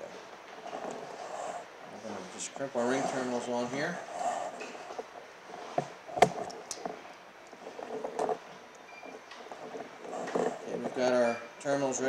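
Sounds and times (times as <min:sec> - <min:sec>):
rustling of wire: 0:00.0 - 0:12.0.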